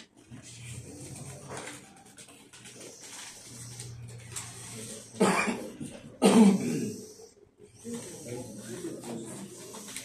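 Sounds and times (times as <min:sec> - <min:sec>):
man coughing: 0:05.2 - 0:07.1.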